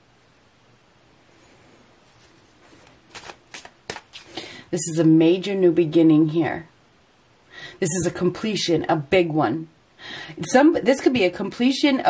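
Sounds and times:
cards being shuffled: 2.0s - 4.4s
sharp card snaps: 3.1s - 4.4s.

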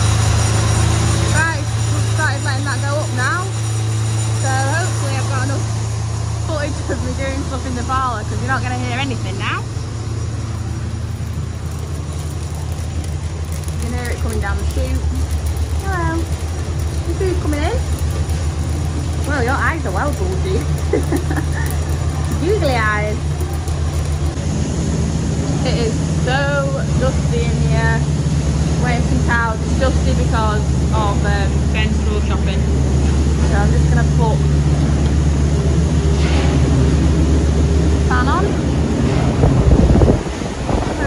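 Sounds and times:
milking machinery hum: 0.0s - 41.0s
truck engine idling: 0.0s - 41.0s
milk pumping through hose: 6.6s - 24.6s.

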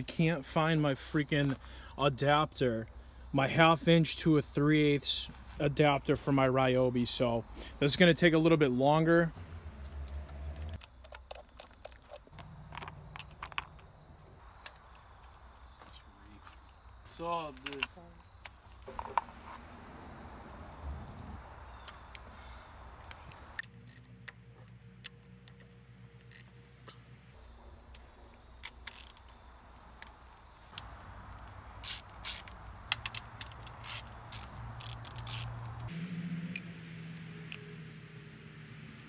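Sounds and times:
steady low hum: 19.4s - 28.5s, 34.1s - 39.0s
ratchet clicking on bolts: 28.8s - 29.3s, 31.8s - 35.9s.

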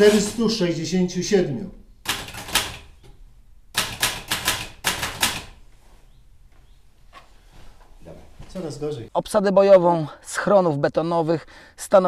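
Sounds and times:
typewriter keys striking: 2.1s - 2.9s, 3.8s - 5.6s.

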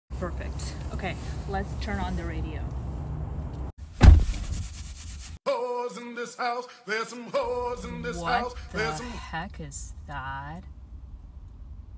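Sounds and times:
car radio music with singing: 7.4s - 10.6s.

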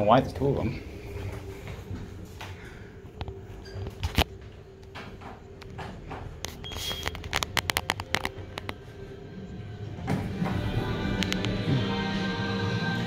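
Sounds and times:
music: 2.4s - 13.0s
sharp clicks and rattles: 3.2s - 8.8s.

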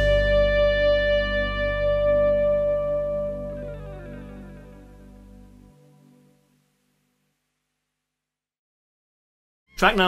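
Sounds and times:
backing music: 0.0s - 6.4s
electric guitar chord ringing: 0.0s - 6.6s.

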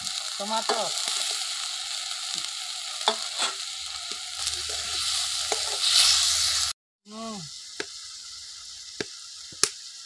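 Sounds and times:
sauce sizzling in a pan: 0.0s - 10.0s.

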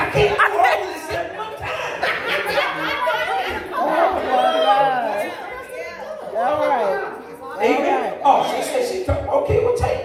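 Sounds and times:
people talking in a hall: 0.0s - 10.0s.

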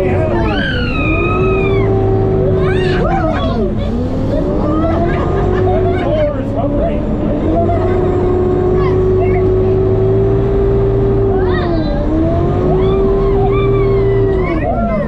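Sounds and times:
diesel engine whine and rumble: 0.0s - 15.0s.

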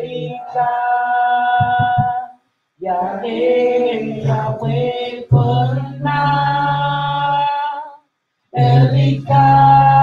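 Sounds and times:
low thumps: 1.6s - 2.2s.

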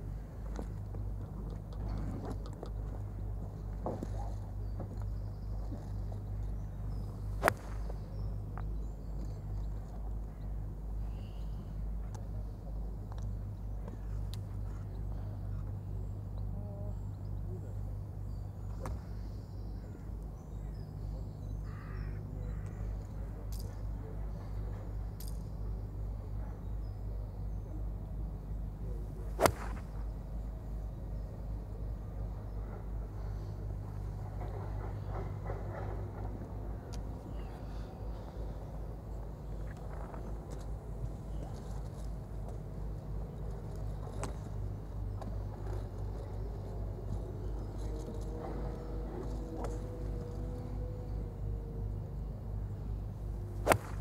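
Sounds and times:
faint bird calls: 10.4s - 11.8s, 16.4s - 23.2s
golf club striking ball: 29.4s - 29.9s, 53.6s - 54.0s.

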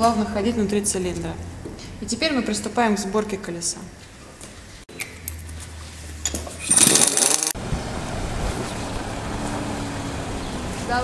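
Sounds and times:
car engine running: 7.6s - 11.0s.

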